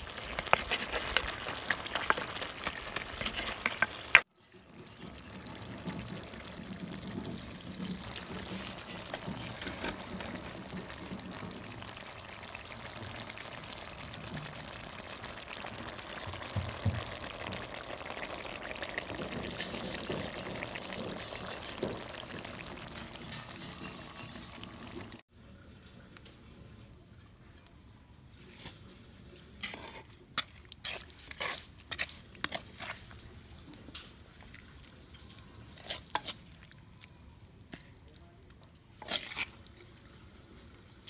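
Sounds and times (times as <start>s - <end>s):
curry bubbling and sizzling: 0.0s - 27.7s, 28.3s - 41.0s.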